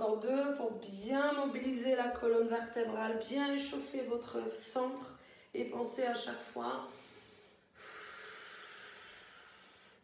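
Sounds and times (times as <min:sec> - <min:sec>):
woman exhaling through pursed lips: 0:06.9 - 0:10.0.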